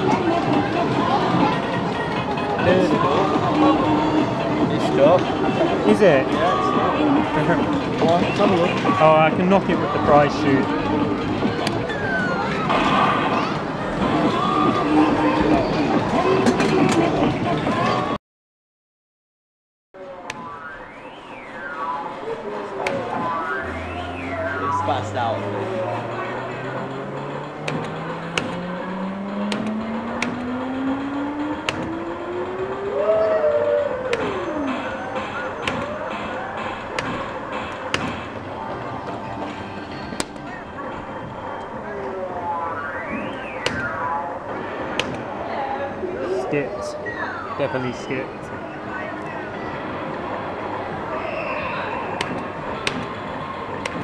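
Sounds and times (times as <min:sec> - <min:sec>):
arcade background noise: 0:00.0 - 0:18.2, 0:20.0 - 0:54.0
long rising electronic tone: 0:20.0 - 0:37.7
warbling electronic chirps: 0:20.4 - 0:27.0, 0:41.0 - 0:44.5
sharp clicks: 0:29.4 - 0:30.6.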